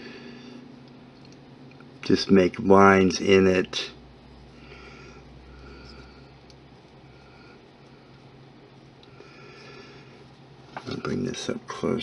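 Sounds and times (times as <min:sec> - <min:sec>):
low steady hum: 0:00.0 - 0:12.0
man talking: 0:02.0 - 0:04.0, 0:10.8 - 0:12.0.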